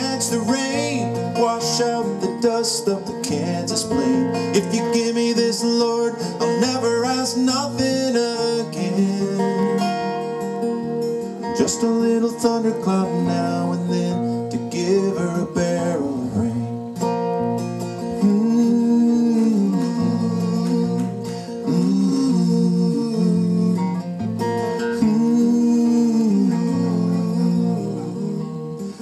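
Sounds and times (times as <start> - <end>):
acoustic guitars playing: 0.0 - 29.0.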